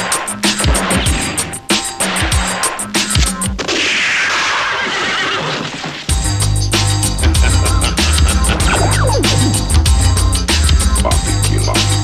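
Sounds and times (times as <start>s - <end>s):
horse whinny: 4.3s - 5.9s.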